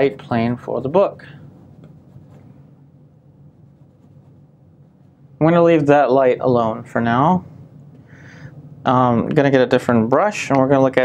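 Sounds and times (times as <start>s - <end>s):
low room hum: 0.0s - 11.0s
paintbrush scratching on canvas: 1.4s - 2.7s, 3.5s - 5.2s.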